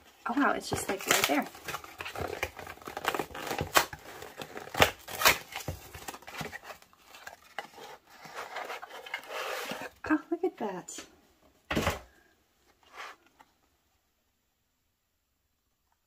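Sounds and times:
cardboard box being torn open: 0.8s - 9.9s.

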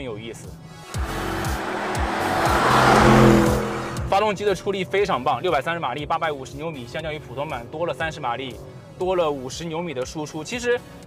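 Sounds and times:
car engine passing: 0.8s - 5.4s.

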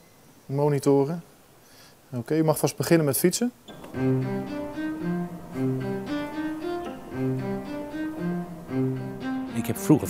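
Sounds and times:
low bowed strings playing: 3.7s - 10.0s.

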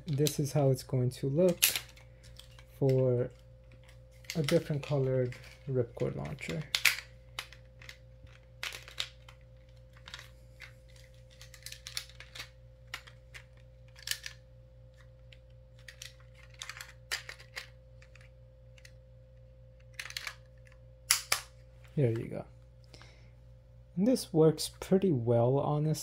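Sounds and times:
plastic launcher clicks and rattles: 4.3s - 8.0s.

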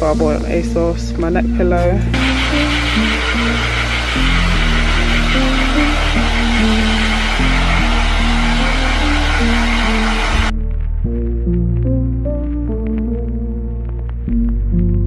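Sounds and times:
slow background music: 0.0s - 15.0s
hair dryer blowing: 2.0s - 10.5s.

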